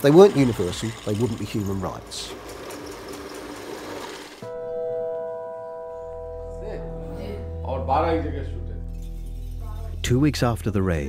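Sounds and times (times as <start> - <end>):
metal drilling machine whirring: 0.0 - 4.4
sustained music chord: 4.4 - 10.3.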